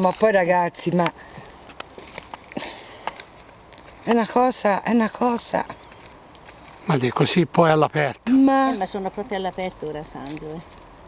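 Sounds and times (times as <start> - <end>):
handling clicks and rustles: 0.0 - 4.4.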